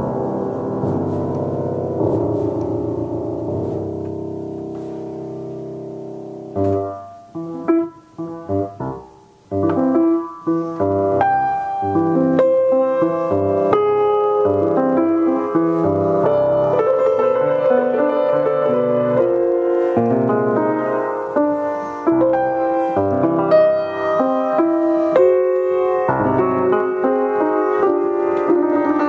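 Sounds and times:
solo piano: 0.0 - 29.0.

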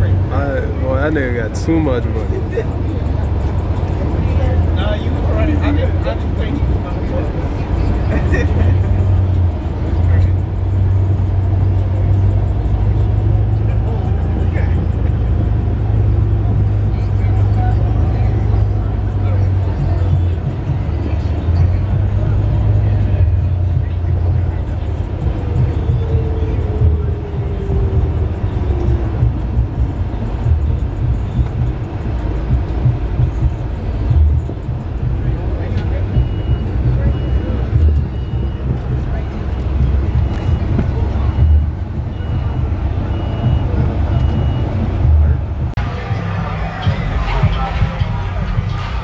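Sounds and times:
vehicle engine and road rumble: 0.0 - 49.0
high beeps: 35.8 - 45.4.

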